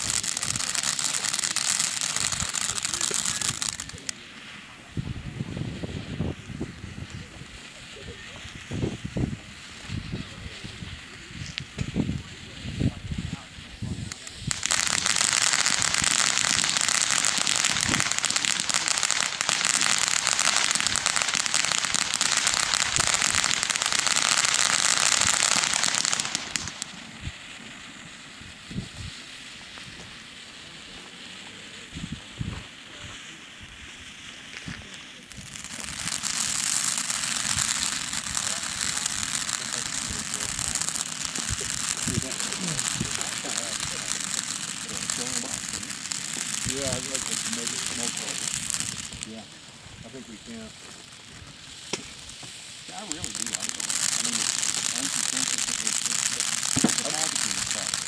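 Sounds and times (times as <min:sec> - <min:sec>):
firework pops: 0:00.0 - 0:58.0
ground fountain firework hissing: 0:00.0 - 0:58.0.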